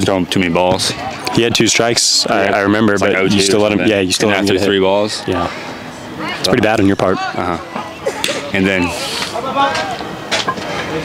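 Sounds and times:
indistinct background voices: 0:00.8 - 0:11.0.

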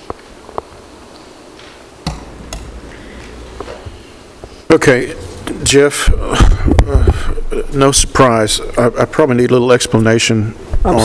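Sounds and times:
microphone handling clicks: 0:02.0 - 0:04.0.

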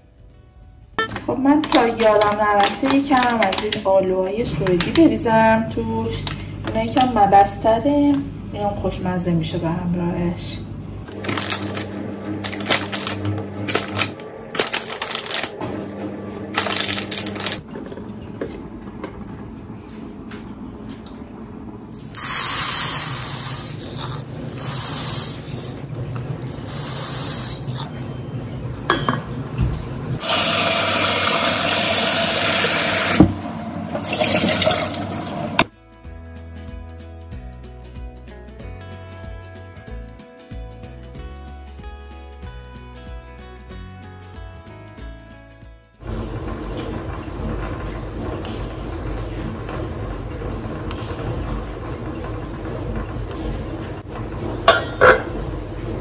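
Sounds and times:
background music: 0:11.1 - 0:17.6, 0:34.0 - 0:46.1
dry rice poured into a pot: 0:22.0 - 0:25.8, 0:26.5 - 0:27.9
tap running water: 0:30.2 - 0:35.7.

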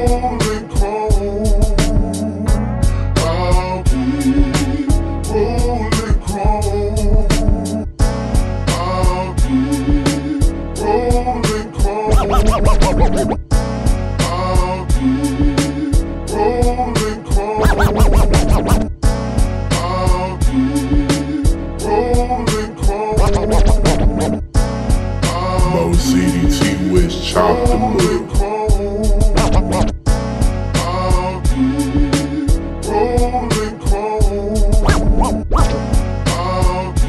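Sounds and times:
quick pitch sweeps: 0:12.1 - 0:13.4, 0:17.6 - 0:18.9, 0:34.8 - 0:35.8
slowed hip hop beat: 0:12.1 - 0:13.4, 0:17.6 - 0:19.0, 0:23.2 - 0:24.4, 0:25.6 - 0:28.7, 0:29.3 - 0:30.0, 0:34.8 - 0:35.9.

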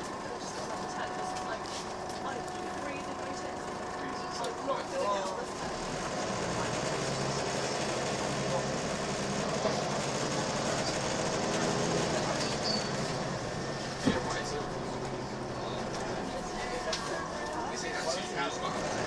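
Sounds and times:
bus diesel engine running: 0:00.0 - 0:19.0
road and tyre noise: 0:00.0 - 0:19.0.

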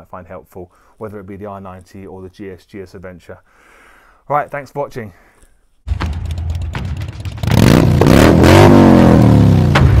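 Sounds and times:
vehicle engine revving: 0:07.0 - 0:10.0.

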